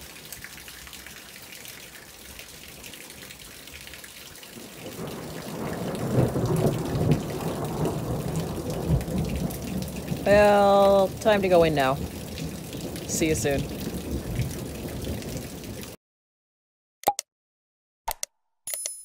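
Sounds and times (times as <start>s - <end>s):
light rain: 0.0s - 16.0s
thunder rolling: 4.8s - 16.0s.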